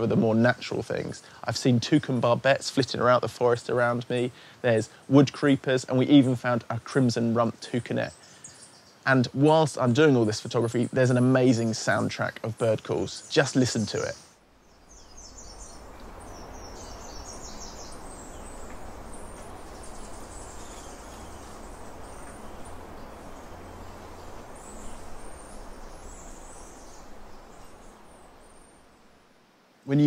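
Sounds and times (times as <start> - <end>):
birds calling: 0.0 - 29.4
background hiss: 0.0 - 30.0.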